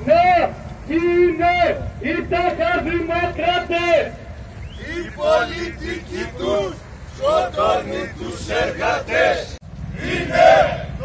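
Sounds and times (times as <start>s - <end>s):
man shouting a chant: 0.0s - 4.1s, 4.8s - 9.5s.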